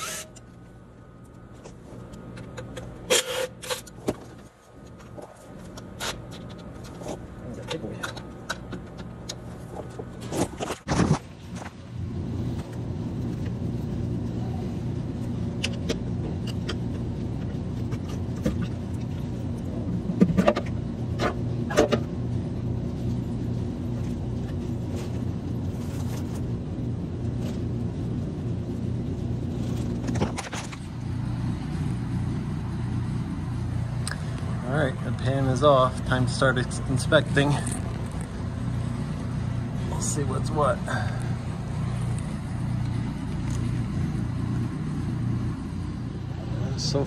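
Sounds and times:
steady low hum: 0:00.0 - 0:47.0.

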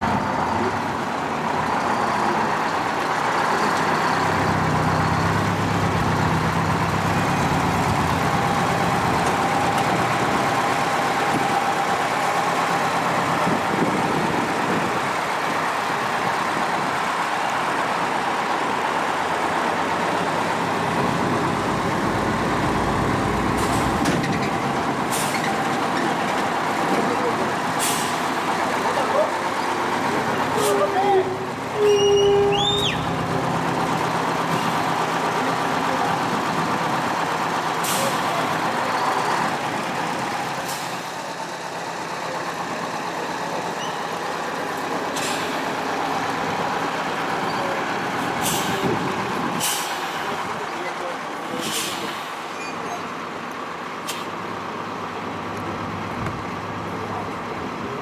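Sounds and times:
bus engine running: 0:00.0 - 0:58.0.

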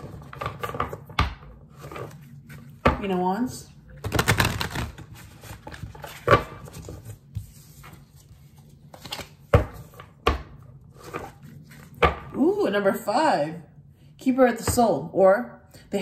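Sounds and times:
cards being shuffled: 0:04.0 - 0:09.9.

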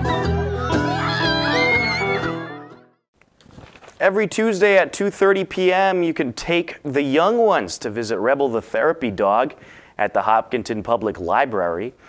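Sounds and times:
country band playing: 0:00.0 - 0:02.8.

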